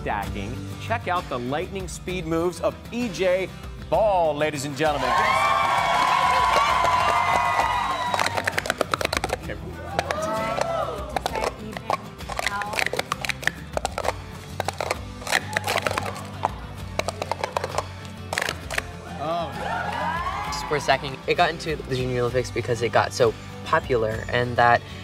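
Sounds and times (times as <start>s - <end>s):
background music: 0.0s - 25.0s
plastic cups clattering: 6.8s - 18.9s.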